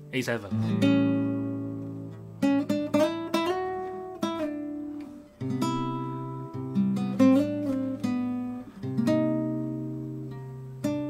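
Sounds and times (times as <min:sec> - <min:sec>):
classical guitar playing: 0:00.0 - 0:11.0.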